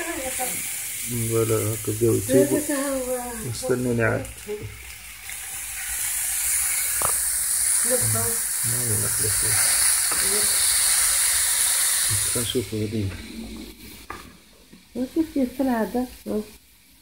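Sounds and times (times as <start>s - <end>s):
skewers sizzling on grill pan: 0.0s - 17.0s.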